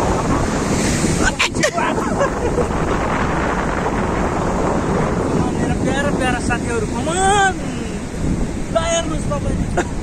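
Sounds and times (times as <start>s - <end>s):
small waves washing on shore: 0.0s - 10.0s
wind buffeting microphone: 0.0s - 10.0s.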